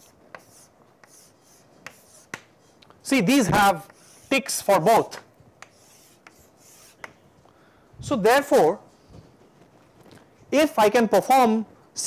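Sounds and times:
chalk ticking against board: 0:00.0 - 0:02.6, 0:03.8 - 0:04.5, 0:05.6 - 0:07.2
chalk scratching on blackboard: 0:00.0 - 0:02.8, 0:03.5 - 0:04.7, 0:05.6 - 0:07.1.

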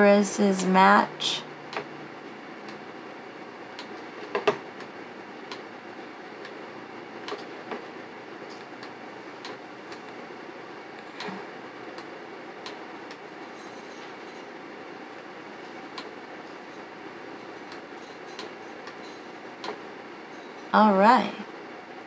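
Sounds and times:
steady background hiss: 0:00.0 - 0:22.0.

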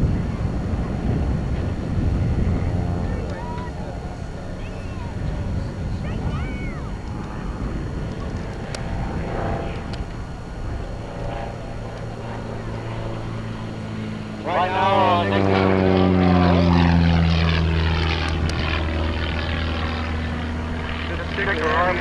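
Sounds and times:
propeller plane passing: 0:00.0 - 0:22.0.

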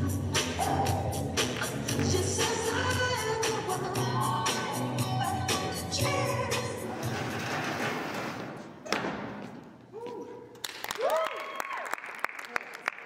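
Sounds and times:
music: 0:00.0 - 0:08.0
thud: 0:08.4 - 0:09.6
scattered clapping: 0:10.6 - 0:13.0.

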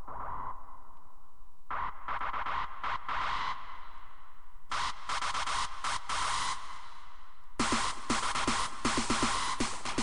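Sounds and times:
electronic dance music: 0:04.7 - 0:06.8, 0:07.6 - 0:10.0.

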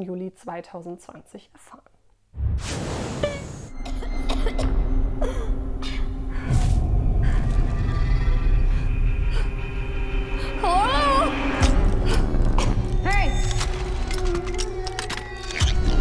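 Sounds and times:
tense music: 0:02.4 - 0:16.0
deep low rumble: 0:06.0 - 0:13.6.

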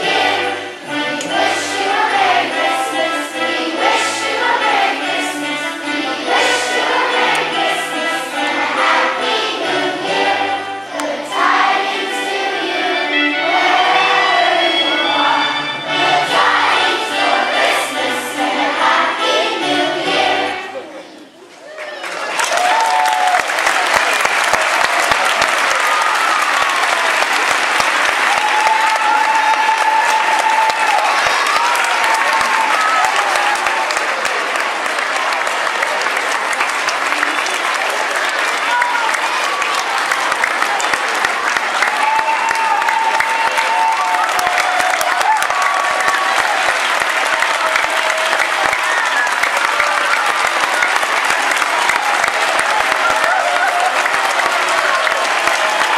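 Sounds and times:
audience applauding: 0:21.6 - 0:55.9.

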